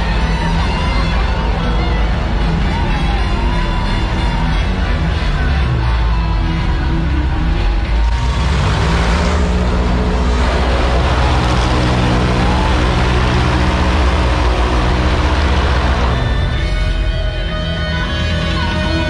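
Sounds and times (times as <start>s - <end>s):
show music: 0.0s - 19.0s
boat engine running: 7.2s - 17.8s.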